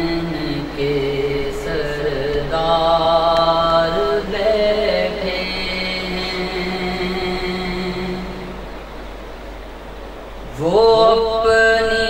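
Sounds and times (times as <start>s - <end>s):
man singing a long note: 0.0s - 8.7s, 10.4s - 12.0s
low steady background hum: 0.0s - 12.0s.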